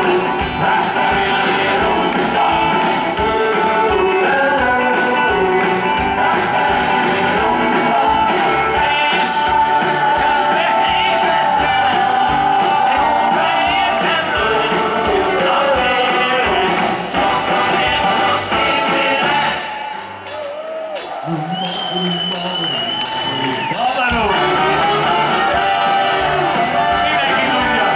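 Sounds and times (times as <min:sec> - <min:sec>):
person singing: 0:00.0 - 0:19.8, 0:21.0 - 0:27.9
live rock band playing: 0:00.0 - 0:27.9
steady drum beat: 0:00.0 - 0:27.9.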